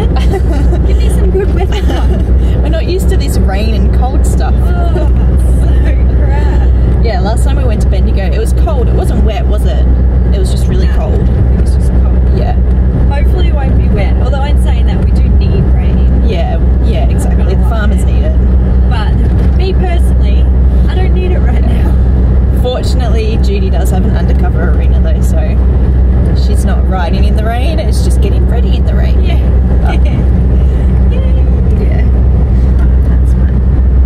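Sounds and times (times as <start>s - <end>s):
occupants talking: 0.0s - 33.6s
car engine and tyres rumbling: 0.0s - 34.0s.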